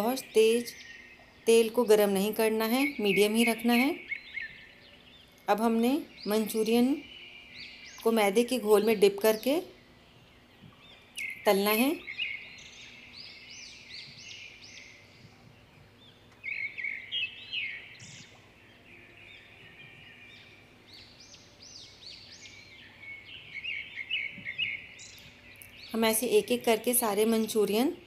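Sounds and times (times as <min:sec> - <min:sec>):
small birds chirping: 0:00.0 - 0:28.0.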